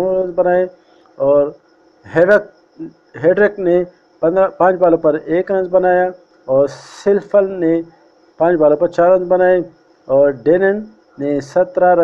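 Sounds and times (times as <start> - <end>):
man narrating: 0.0 - 1.5, 2.1 - 12.0.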